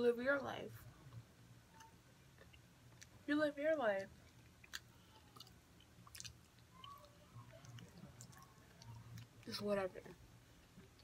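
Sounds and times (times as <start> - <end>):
chewing cookie crunches: 4.0 - 9.6.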